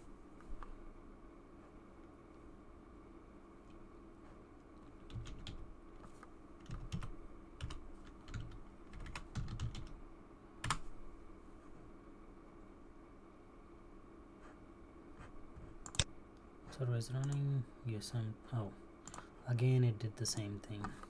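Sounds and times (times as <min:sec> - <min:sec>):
faint background hum: 0:00.0 - 0:21.0
typing on keyboard: 0:04.8 - 0:05.6, 0:06.6 - 0:10.0.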